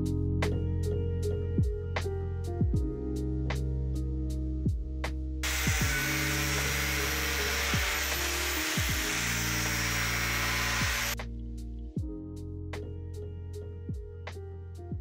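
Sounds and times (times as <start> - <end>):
angle grinder cutting plastic pipe: 5.4 - 11.2.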